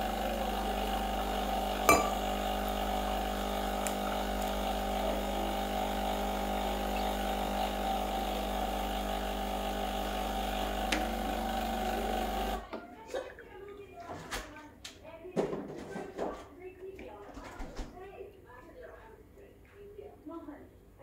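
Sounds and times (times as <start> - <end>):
espresso machine pump buzzing: 0.0 - 12.6.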